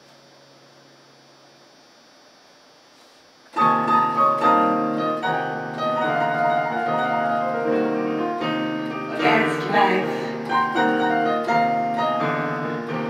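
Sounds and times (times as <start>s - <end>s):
piano chords on electronic keyboard: 3.5s - 13.0s.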